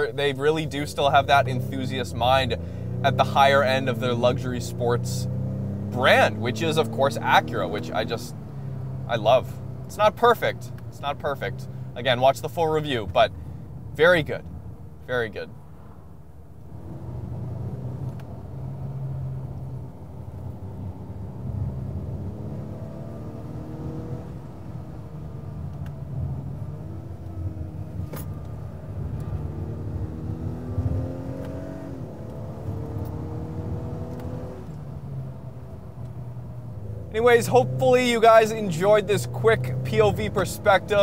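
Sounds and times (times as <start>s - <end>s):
car engine accelerating and shifting: 0.0s - 13.9s, 15.6s - 41.0s
tyre and road noise: 0.0s - 41.0s.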